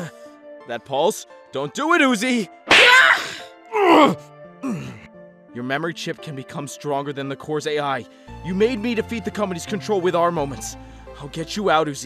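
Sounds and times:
low background music: 0:00.0 - 0:12.0
person yelling: 0:02.7 - 0:04.2
pained cries: 0:02.7 - 0:05.1.

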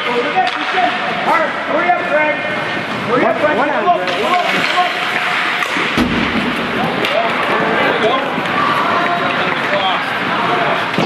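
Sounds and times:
ice hockey game noise: 0:00.0 - 0:11.0
murmur of spectators: 0:00.0 - 0:11.0.

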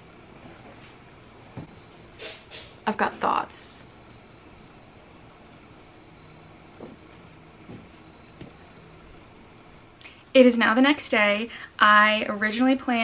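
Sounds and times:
faint low hum: 0:02.8 - 0:13.0.

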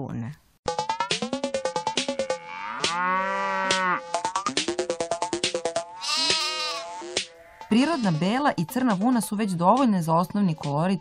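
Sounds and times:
background music: 0:00.7 - 0:11.0
sheep bleating: 0:06.0 - 0:08.4.

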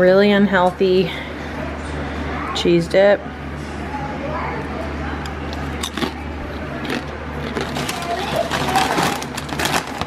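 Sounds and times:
steady low hum: 0:00.0 - 0:10.0
plastic chip bag crackling: 0:06.8 - 0:10.0.

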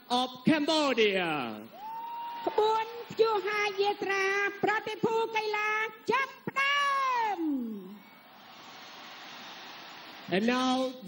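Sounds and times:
faint stadium crowd noise: 0:00.0 - 0:11.0.

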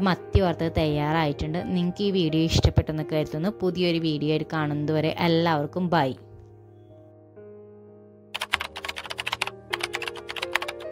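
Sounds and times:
rapid irregular clicks: 0:08.4 - 0:10.9.

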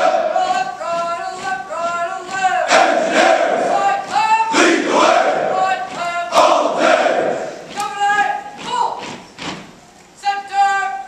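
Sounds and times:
soldiers shouting in unison: 0:02.4 - 0:08.4.

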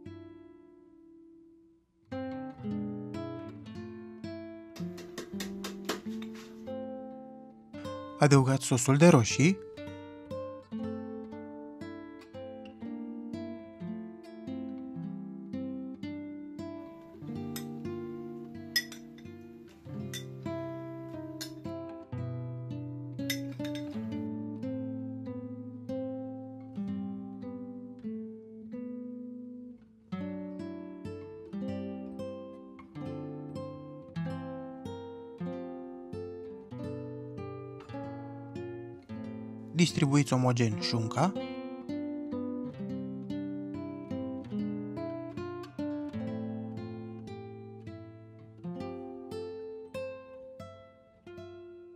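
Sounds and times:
acoustic guitar melody: 0:00.0 - 0:51.9.

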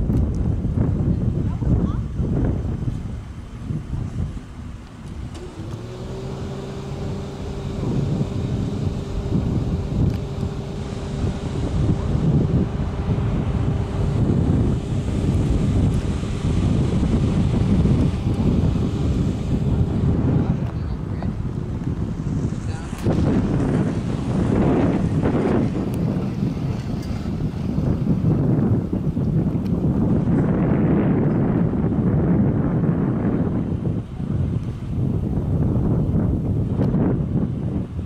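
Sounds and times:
wind rumble on microphone: 0:00.0 - 0:38.0
vehicle engine humming: 0:02.1 - 0:38.0.

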